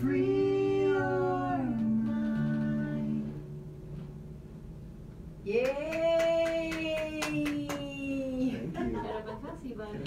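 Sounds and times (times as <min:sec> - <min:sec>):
acoustic guitar chord: 0:00.0 - 0:05.4.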